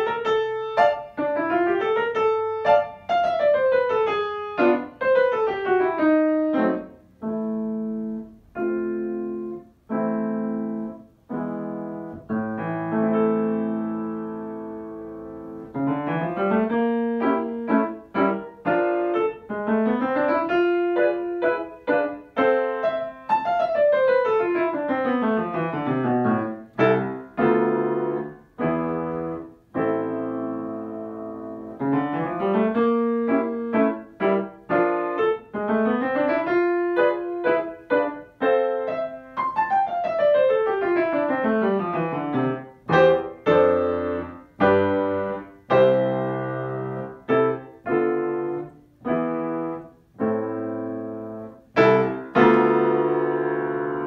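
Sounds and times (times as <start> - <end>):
solo piano: 0.0 - 54.0.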